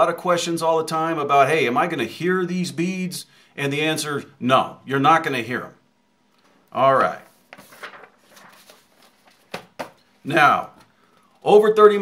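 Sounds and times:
paper rustling: 6.4 - 11.2
sharp paper sounds: 7.0 - 9.9.

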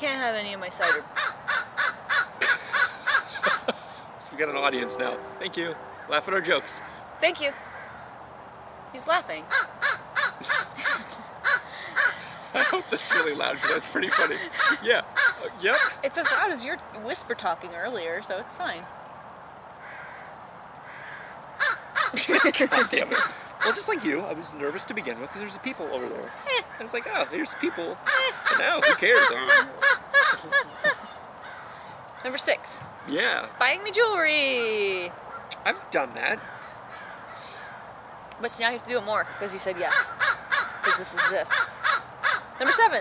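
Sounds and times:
crow cawing: 0.8 - 4.0, 5.0 - 8.2, 9.4 - 16.6, 19.8 - 23.9, 26.6 - 33.1, 36.4 - 38.0, 39.1 - 43.0.

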